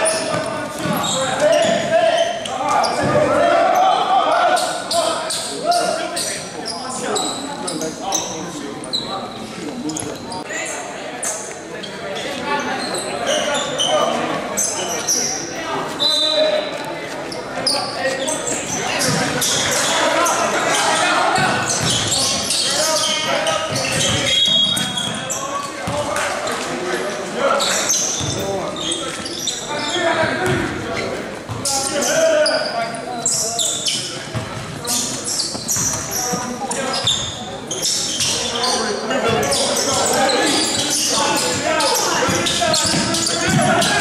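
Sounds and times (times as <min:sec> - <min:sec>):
indistinct voices echoing: 0:00.0 - 0:44.0
basketball bouncing on hardwood: 0:23.9 - 0:24.2.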